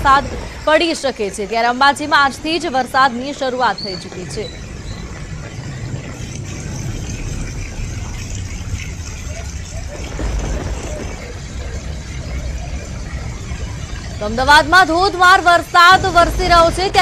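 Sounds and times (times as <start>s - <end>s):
deep engine rumble: 0.0s - 17.0s
motorbike engines running: 0.0s - 17.0s
rain and running water: 0.0s - 17.0s.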